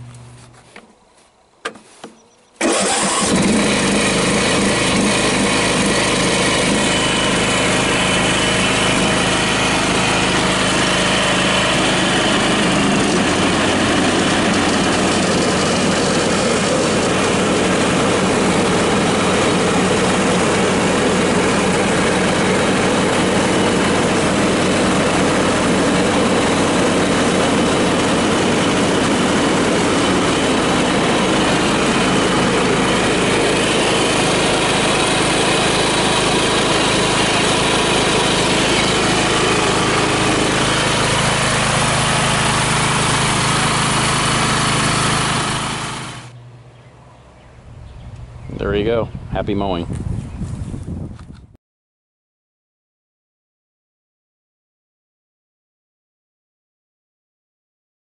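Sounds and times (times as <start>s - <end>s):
mower engine starting and running: 0.0s - 51.5s.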